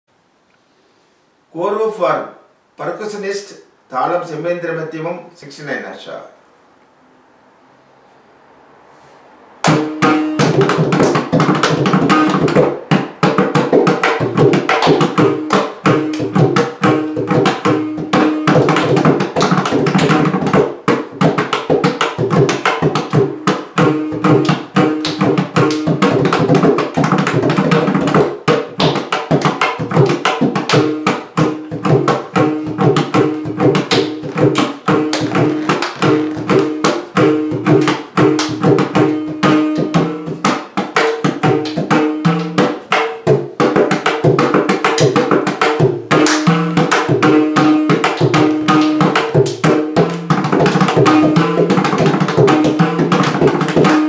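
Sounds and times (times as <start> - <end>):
drum head ringing: 9.6 - 54.0
rapid hand drum strokes: 9.6 - 54.0.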